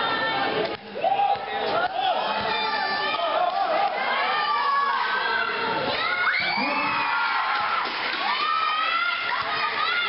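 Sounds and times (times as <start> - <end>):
crowd shouting and cheering: 0.0 - 10.0
long high yells: 6.1 - 7.7.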